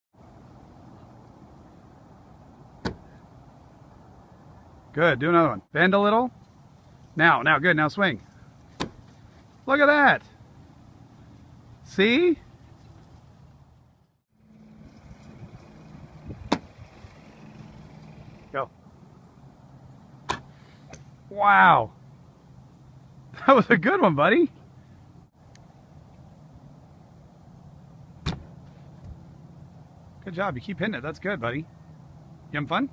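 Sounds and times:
small engine humming: 14.3s - 18.6s.

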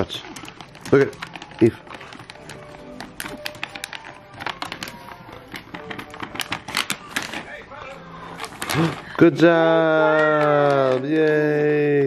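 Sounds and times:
plastic puzzle toy clicking and rattling: 0.0s - 7.5s, 10.2s - 11.7s
soft background music: 0.0s - 12.0s.

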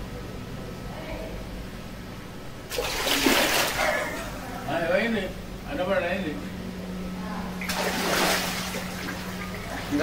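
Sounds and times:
floodwater splashing: 2.7s - 4.2s, 7.6s - 10.0s.

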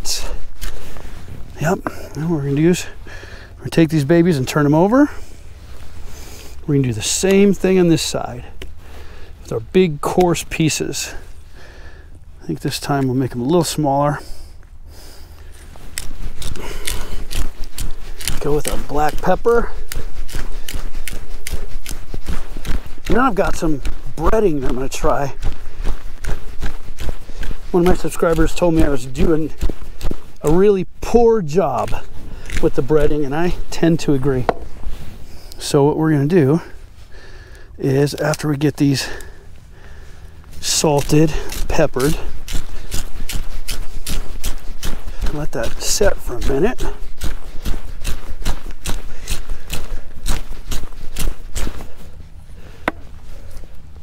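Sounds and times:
salt grinder crunching: 15.0s - 35.6s, 40.6s - 52.1s.

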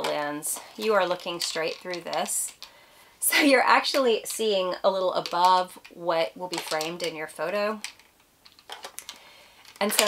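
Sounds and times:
small plastic clicks and rubbing: 0.0s - 2.8s, 5.1s - 10.0s.

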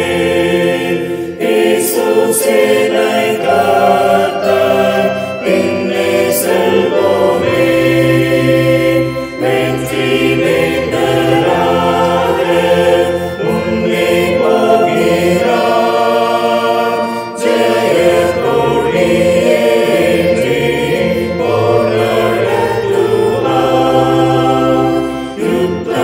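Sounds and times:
choir singing a hymn: 0.0s - 26.0s.

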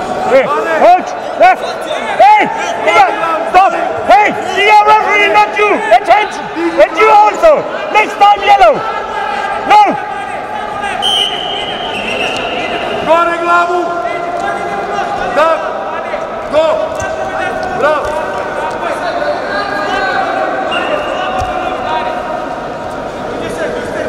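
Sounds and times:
referee's whistle: 11.0s - 13.0s.

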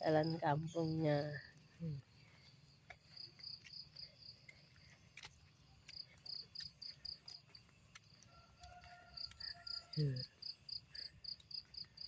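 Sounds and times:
faint high-pitched insect chirping: 0.1s - 12.0s.

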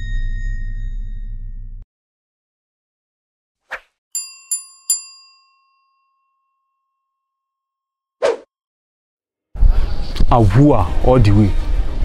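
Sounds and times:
chime-like ding: 0.0s - 1.8s, 4.2s - 7.0s.

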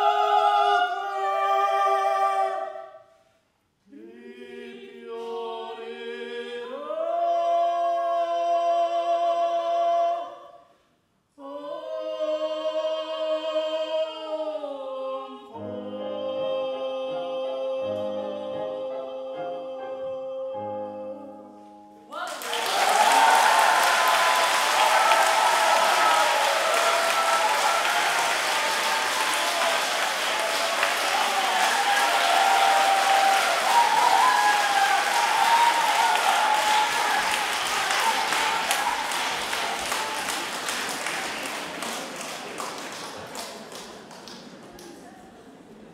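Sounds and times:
audience applauding: 22.2s - 44.8s.

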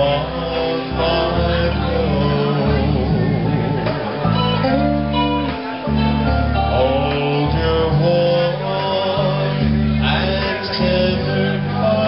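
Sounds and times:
guitars strumming: 0.0s - 12.0s
live band playing: 0.0s - 12.0s.

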